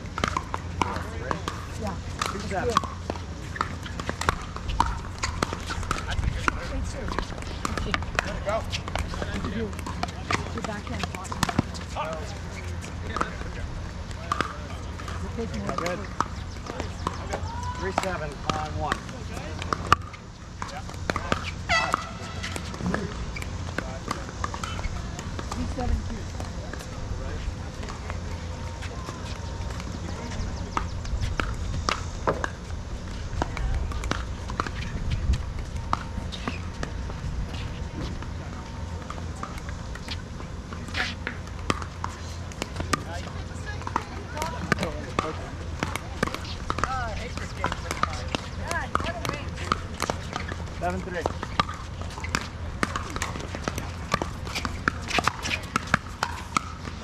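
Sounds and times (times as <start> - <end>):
ball bouncing on hard court: 0.2 - 57.0
paddles hitting plastic ball: 40.8 - 57.0.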